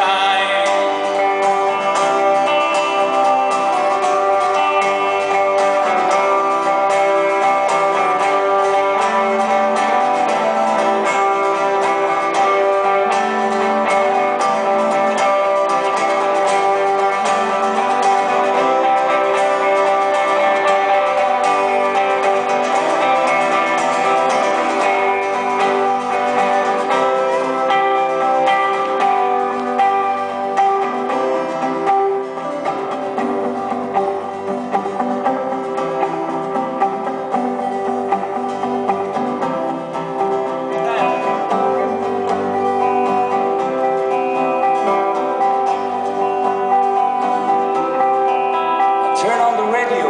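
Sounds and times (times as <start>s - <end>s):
acoustic guitar: 0.0s - 50.0s
electric guitar: 0.0s - 50.0s.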